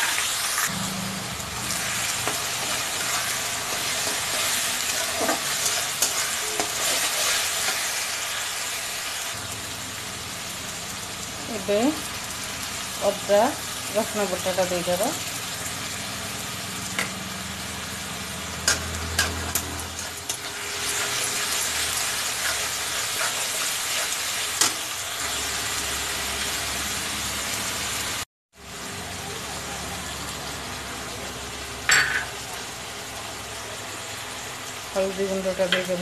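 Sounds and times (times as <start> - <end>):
paste sizzling in hot oil: 0.0 - 16.9, 17.6 - 28.3
spatula scraping pan: 1.7 - 8.4, 18.6 - 25.4.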